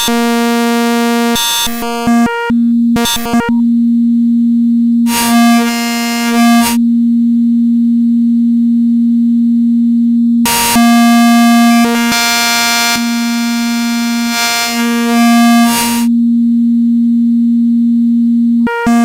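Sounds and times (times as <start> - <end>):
synthesizer oscillator tone: 1.7 - 3.8, 18.4 - 19.0.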